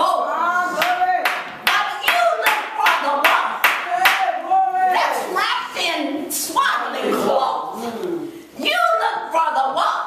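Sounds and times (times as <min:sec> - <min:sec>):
hand clapping in rhythm: 0:00.8 - 0:04.4.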